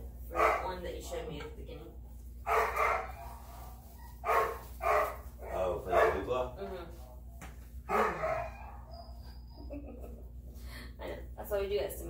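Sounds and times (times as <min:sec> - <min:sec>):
puppy squealing and whining: 0:07.9 - 0:10.1.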